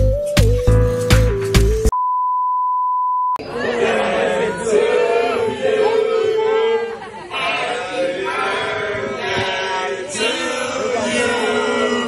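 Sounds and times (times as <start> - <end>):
background music with steady beat: 0.0 - 1.9.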